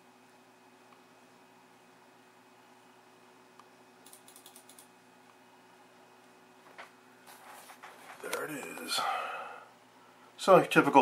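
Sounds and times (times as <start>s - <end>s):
faint computer clicks: 3.6s - 4.9s.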